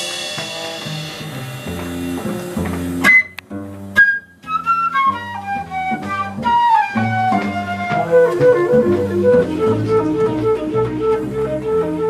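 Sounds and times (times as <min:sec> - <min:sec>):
jazz band accents: 0:00.0 - 0:12.0
piano: 0:00.0 - 0:12.0
plucked double bass: 0:00.0 - 0:12.0.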